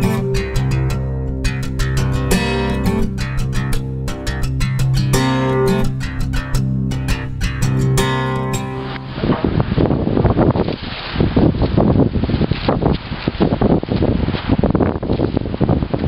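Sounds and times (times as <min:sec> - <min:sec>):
strummed guitar music: 0:00.0 - 0:09.5
wind buffeting microphone: 0:00.0 - 0:16.0
plastic sheet rustling and crackling: 0:08.3 - 0:16.0.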